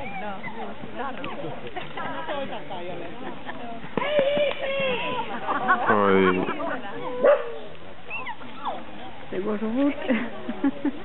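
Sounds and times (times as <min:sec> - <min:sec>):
high yelps: 0:07.1 - 0:08.8
dog barking: 0:07.2 - 0:07.6.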